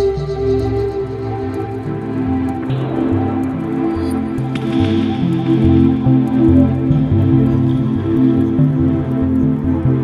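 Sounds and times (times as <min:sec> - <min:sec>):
calm ambient music: 0:00.0 - 0:10.0.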